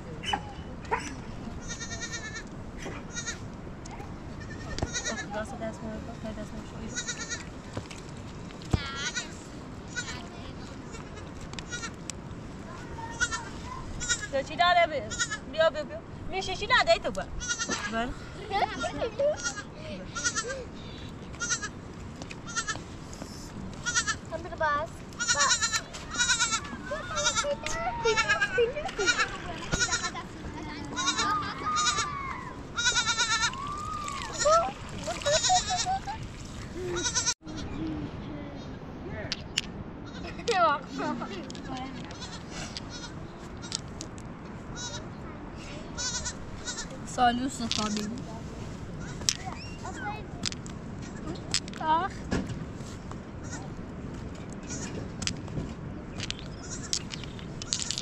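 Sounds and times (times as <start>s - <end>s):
people's voices: 0.0s - 7.4s, 23.0s - 44.1s, 44.8s - 52.4s
young goat bleating: 1.6s - 2.5s, 3.1s - 3.4s, 4.4s - 5.3s, 6.9s - 7.5s, 8.9s - 10.2s, 10.9s - 12.0s, 13.0s - 14.4s, 15.1s - 15.5s, 17.4s - 18.0s, 19.3s - 20.6s, 21.4s - 21.8s, 22.4s - 22.8s, 23.8s - 24.2s, 25.2s - 30.2s, 30.9s - 34.6s, 35.2s - 36.0s, 36.8s - 37.8s, 40.0s - 40.4s, 42.1s - 43.7s, 44.8s - 45.0s, 46.0s - 46.9s, 53.4s - 53.7s, 54.6s - 55.0s, 56.6s - 56.9s.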